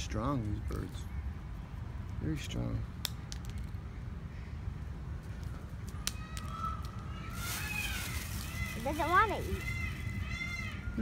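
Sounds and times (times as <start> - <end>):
outdoor background rumble: 0.0 - 11.0.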